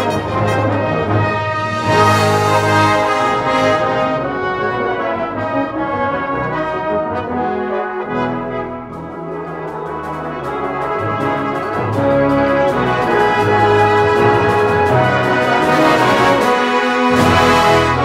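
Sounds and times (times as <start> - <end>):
brass band playing: 0.0 - 18.0.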